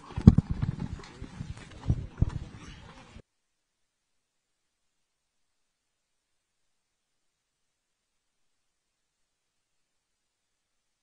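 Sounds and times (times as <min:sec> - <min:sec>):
dull thumps and knocks: 0:00.0 - 0:02.6.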